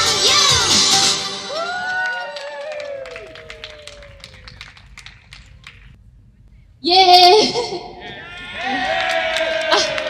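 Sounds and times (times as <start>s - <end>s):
audience clapping: 1.5s - 6.0s, 8.6s - 10.0s.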